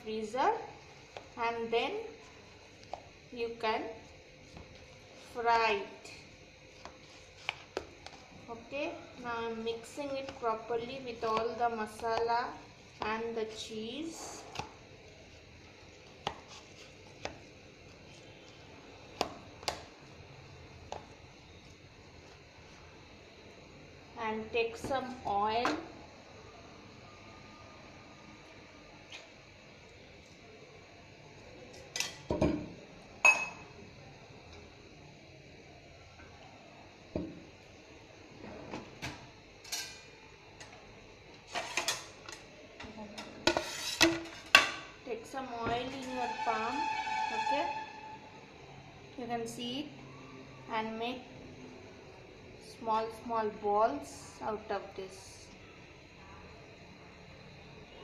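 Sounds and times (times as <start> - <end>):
hand kneading mixture in bowl: 6.7 - 19.8.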